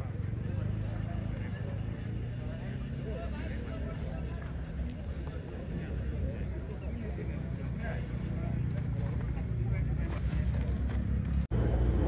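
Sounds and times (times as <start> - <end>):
indistinct chatter of spectators: 0.0 - 11.5.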